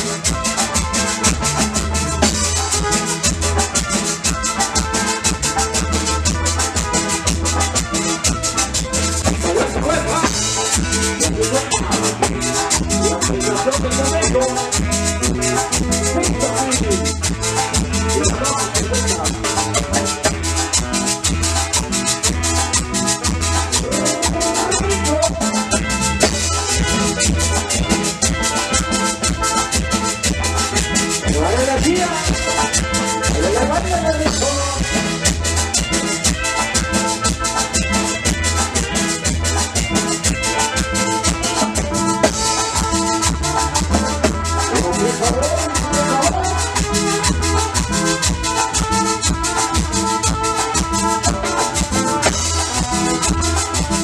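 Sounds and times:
electric guitar melody: 0.0s - 54.0s
keyboard melody: 0.0s - 54.0s
steady bass: 0.0s - 54.0s
steady percussion beat: 0.0s - 54.0s.

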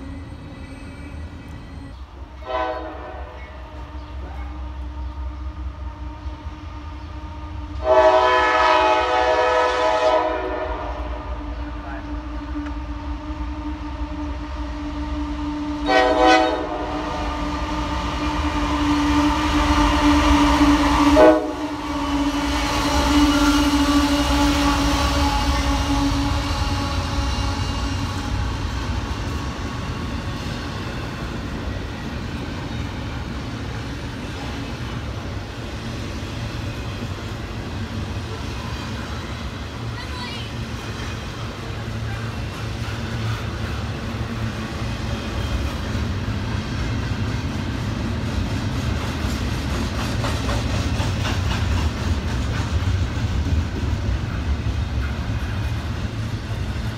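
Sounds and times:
freight train cars rumbling: 0.0s - 56.9s
train air horn: 2.4s - 14.5s, 15.8s - 17.7s, 18.3s - 28.4s.

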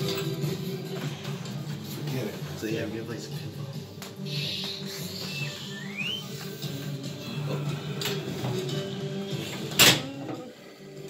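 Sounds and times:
whistle-like sound effect: 4.3s - 6.6s
pinball machine electronic music: 5.0s - 11.0s.

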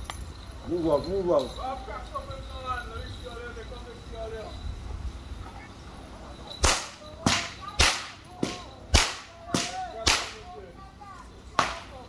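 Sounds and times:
whip cracks: 6.6s - 10.4s, 11.6s - 11.9s.

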